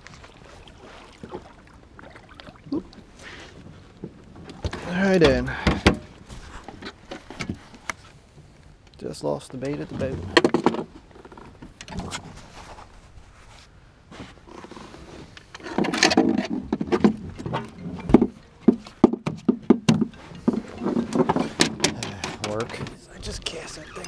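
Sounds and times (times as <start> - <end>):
clicks and knocks on boat deck: 15.7 - 23.5.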